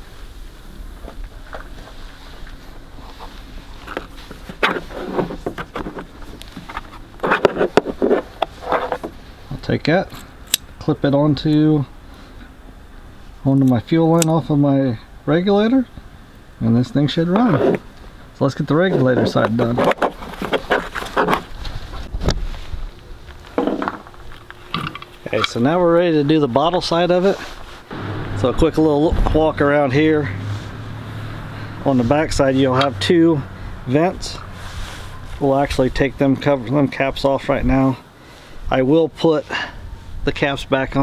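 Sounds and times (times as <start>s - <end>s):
rubber hose rustling on plastic: 1.1s - 9.3s
wind rumbling on microphone: 21.4s - 23.4s, 27.8s - 36.3s.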